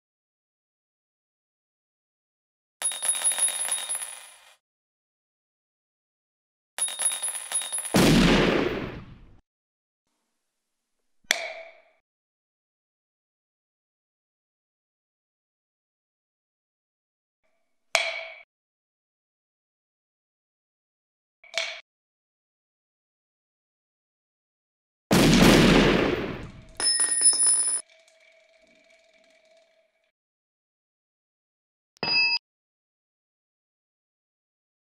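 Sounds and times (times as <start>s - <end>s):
brass cartridges clinking: 2.8s - 4.6s, 6.8s - 8.0s, 26.8s - 27.8s
gunshot blast tail: 8.0s - 9.4s, 25.1s - 26.8s
cartridge casing clinking on hard surface: 26.8s - 27.8s.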